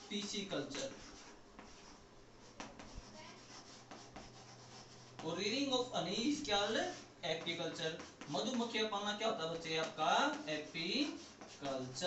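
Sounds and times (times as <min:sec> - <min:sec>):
chalk scratching on a board: 0:00.0 - 0:12.0.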